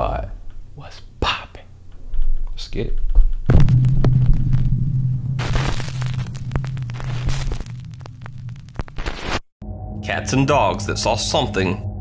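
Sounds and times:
crackling static clicks: 0:01.7 - 0:09.5
low droning hum: 0:01.7 - 0:12.0
static hiss: 0:05.2 - 0:09.5.

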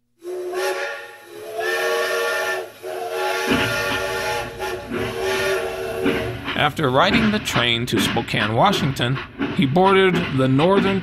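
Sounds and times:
steam locomotive whistle: 0:00.2 - 0:06.6
hissing steam: 0:00.2 - 0:10.8
low train rumble: 0:00.2 - 0:11.0.

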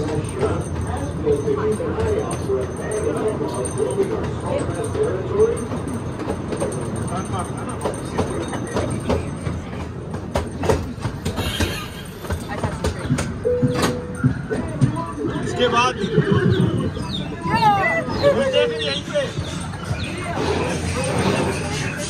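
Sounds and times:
train rumbling along track: 0:00.0 - 0:22.0.

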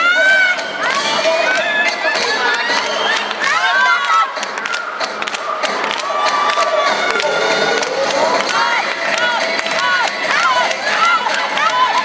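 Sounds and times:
spectators cheering and shouting: 0:00.0 - 0:12.0
sharp claps: 0:02.2 - 0:12.0.

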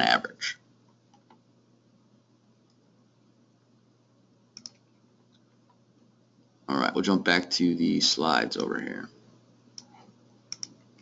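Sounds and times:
faint steady hum: 0:00.0 - 0:11.0
computer mouse clicks: 0:04.5 - 0:05.8, 0:09.7 - 0:11.0.

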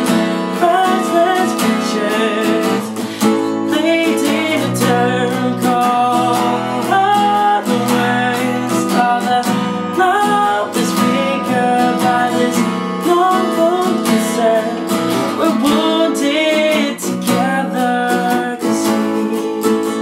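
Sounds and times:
man singing: 0:00.0 - 0:20.0
strummed acoustic guitar: 0:00.0 - 0:20.0.

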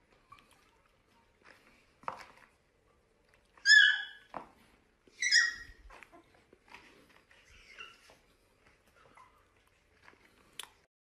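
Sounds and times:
puppy whining: 0:03.6 - 0:04.3, 0:05.1 - 0:10.3.

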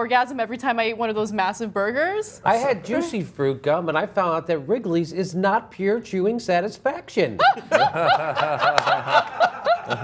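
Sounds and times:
people laughing: 0:07.4 - 0:10.0.

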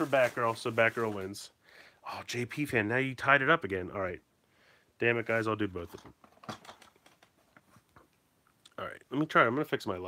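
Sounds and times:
plastic toy packages clicking: 0:06.2 - 0:07.4.

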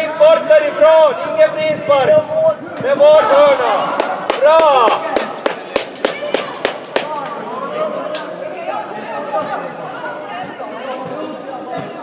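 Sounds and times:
spectators chattering: 0:00.0 - 0:12.0
sharp claps: 0:04.0 - 0:07.4.

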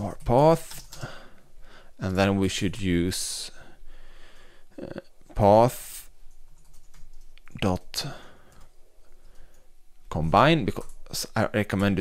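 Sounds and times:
keyboard keys clicking: 0:06.3 - 0:07.6.

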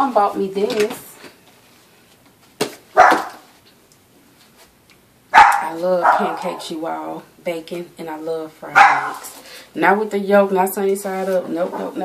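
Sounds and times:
dog barking: 0:03.0 - 0:03.5, 0:05.4 - 0:06.6, 0:08.7 - 0:09.2.

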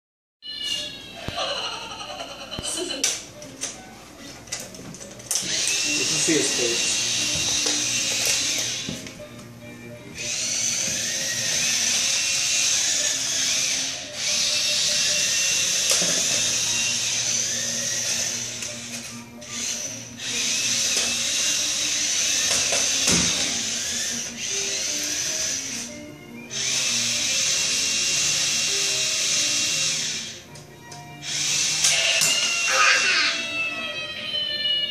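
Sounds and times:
toy car electric motors whirring: 0:00.4 - 0:34.9.

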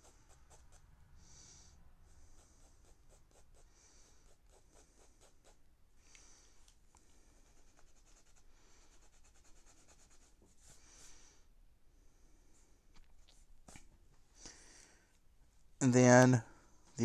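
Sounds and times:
pen scratching on paper: 0:00.0 - 0:00.9, 0:02.0 - 0:05.6.

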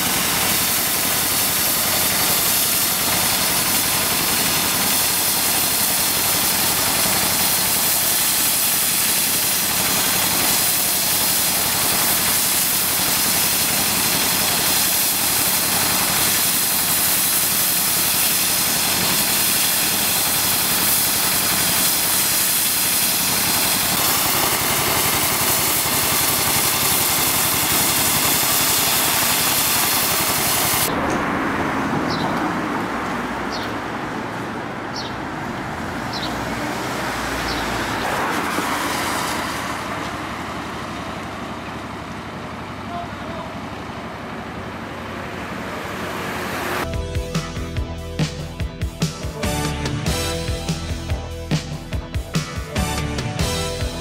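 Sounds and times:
hiss of gas heat lance: 0:00.0 - 0:30.9
engine drone: 0:00.0 - 0:54.0.

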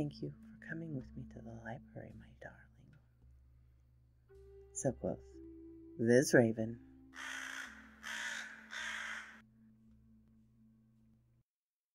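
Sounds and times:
faint steady low hum: 0:00.0 - 0:07.1
crow cawing: 0:07.1 - 0:09.4.

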